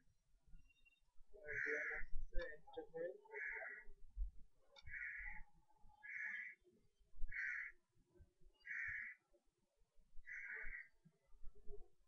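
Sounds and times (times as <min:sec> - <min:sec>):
bird harsh calls: 0:01.5 - 0:02.1, 0:03.3 - 0:03.9, 0:04.8 - 0:05.4, 0:06.0 - 0:06.6, 0:07.3 - 0:07.8, 0:08.6 - 0:09.2, 0:10.3 - 0:10.9.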